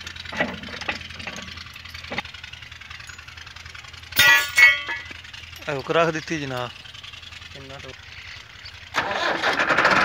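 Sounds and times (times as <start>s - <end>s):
tractor diesel engine idling: 0.0s - 10.0s.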